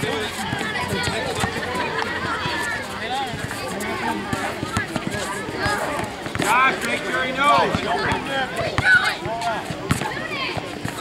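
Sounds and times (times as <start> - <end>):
footsteps on court: 0.0 - 11.0
players calling out: 0.0 - 11.0
basketball bouncing: 4.3 - 6.6, 7.6 - 10.2.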